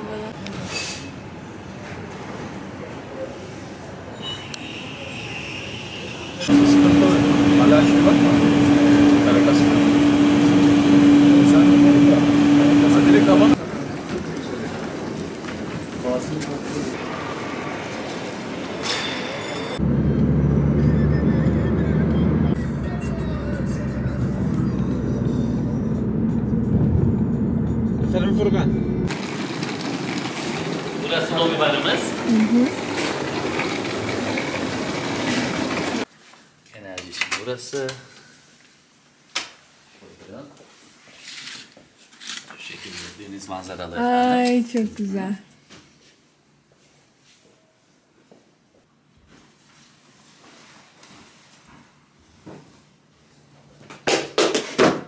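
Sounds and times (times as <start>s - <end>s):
voices: 31.0s - 34.7s.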